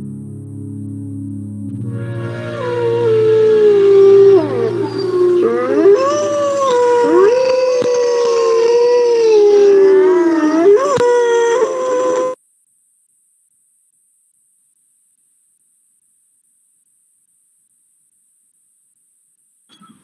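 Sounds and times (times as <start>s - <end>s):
wolves howling: 1.9s - 12.4s.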